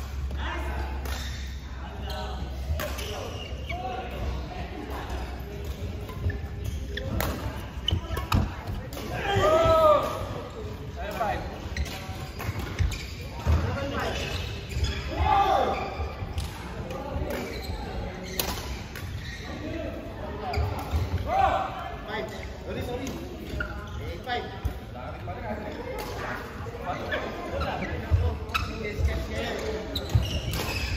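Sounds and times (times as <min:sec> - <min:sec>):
sneakers squeaking on floor: 0:00.1 - 0:25.0, 0:26.9 - 0:30.9.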